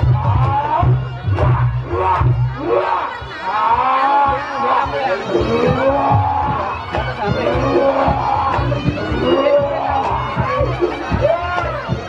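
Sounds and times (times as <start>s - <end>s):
low drum beats: 0.0s - 12.0s
reedy wind instrument melody: 0.0s - 12.0s.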